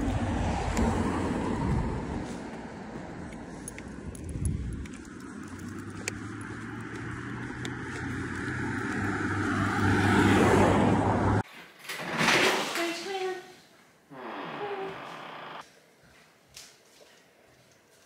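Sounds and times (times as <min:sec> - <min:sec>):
road traffic rumble: 0:00.0 - 0:11.4, 0:14.1 - 0:15.6
vehicle approaching: 0:00.0 - 0:11.4.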